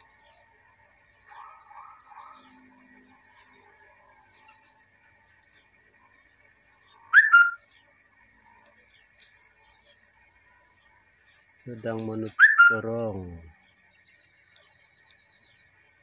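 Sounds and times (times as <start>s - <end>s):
faint high-pitched hum: 0.0s - 16.0s
soft bird chirps: 0.0s - 16.0s
bird two-note call: 7.1s - 7.6s, 12.4s - 12.9s.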